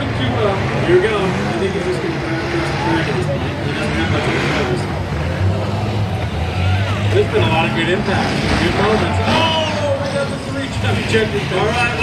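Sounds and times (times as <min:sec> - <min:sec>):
race car engines droning: 0:00.0 - 0:12.0
spectators chattering: 0:00.0 - 0:12.0.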